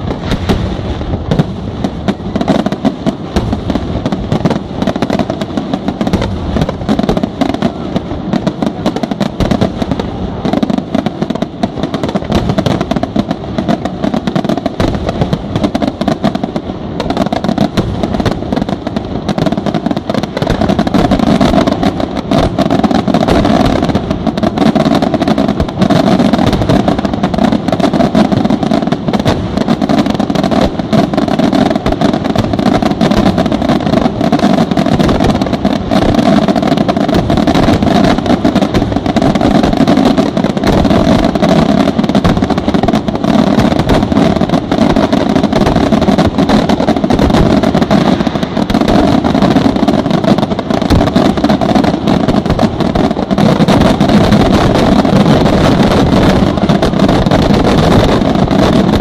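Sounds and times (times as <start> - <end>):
fireworks bangs and crackles: 0.0 - 59.0.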